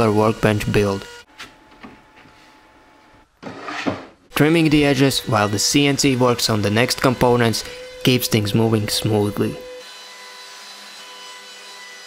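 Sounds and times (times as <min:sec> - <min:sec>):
plywood parts rubbing and sliding: 0:03.4 - 0:04.2.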